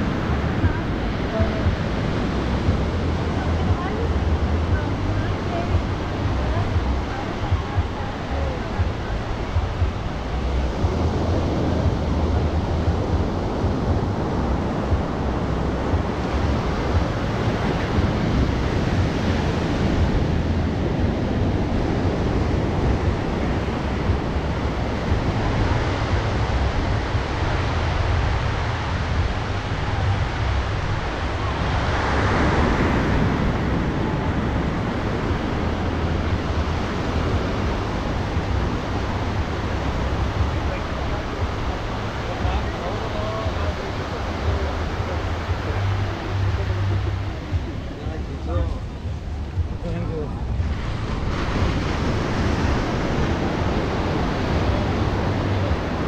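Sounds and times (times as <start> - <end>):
waves breaking on beach: 0.0 - 56.0
wind buffeting microphone: 0.0 - 56.0.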